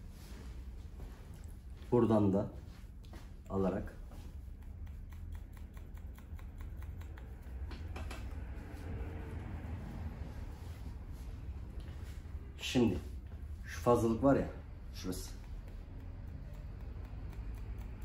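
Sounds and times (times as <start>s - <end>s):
low steady hum: 0.0s - 18.0s
scissors snipping hair: 2.9s - 10.5s, 14.7s - 18.0s.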